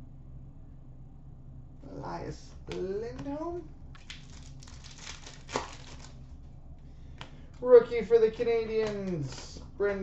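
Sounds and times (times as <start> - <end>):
trading cards rustling: 4.0 - 6.2.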